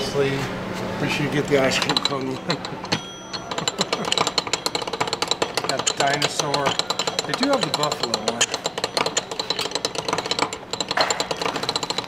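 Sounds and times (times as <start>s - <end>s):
hand crank gears clicking: 1.6s - 12.0s.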